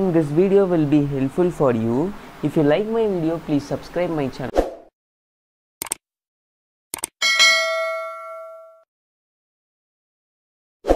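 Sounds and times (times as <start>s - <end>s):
quick clicks: 5.8s - 6.0s, 6.9s - 7.2s
notification bell ding: 7.2s - 8.9s.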